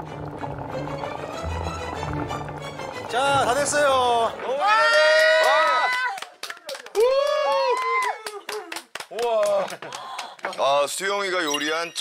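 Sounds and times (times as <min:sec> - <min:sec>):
hands clapping: 0:04.3 - 0:11.1
people exclaiming in delight: 0:04.5 - 0:06.2, 0:07.0 - 0:09.8.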